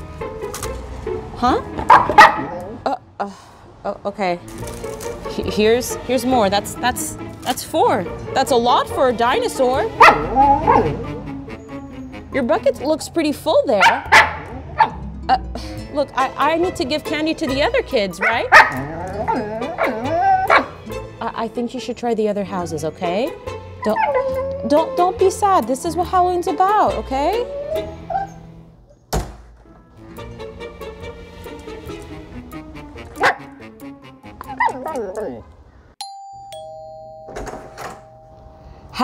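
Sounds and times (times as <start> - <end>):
soft background music: 0.0 - 28.8
dog vocalizing: 10.0 - 11.8, 18.2 - 20.8
dog whining: 10.0 - 12.1, 18.2 - 20.9, 23.7 - 25.4, 27.3 - 29.0, 34.4 - 35.5
door shutting thunk: 29.1 - 29.8.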